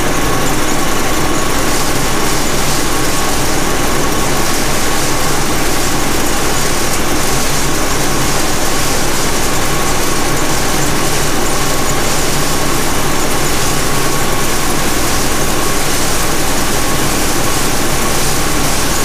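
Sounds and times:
combine harvester machine noise: 0.0 - 19.0.

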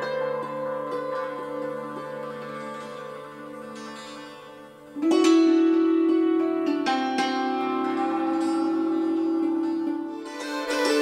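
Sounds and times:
hammered dulcimer: 0.0 - 11.0.

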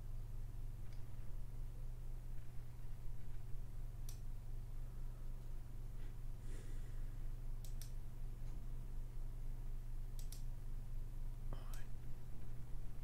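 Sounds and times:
low electrical hum: 0.0 - 13.0
computer mouse clicking: 4.0 - 4.3, 7.6 - 8.0, 10.2 - 10.5
faint breathy sound: 4.7 - 7.4.

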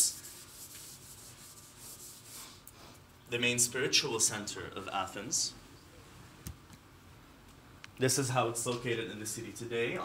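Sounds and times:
faint rubbing noise: 0.0 - 2.6
low room hiss: 0.0 - 10.0.

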